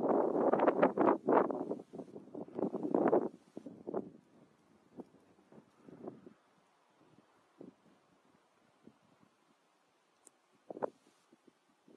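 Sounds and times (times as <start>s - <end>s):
wind buffeting microphone: 0.0s - 9.4s.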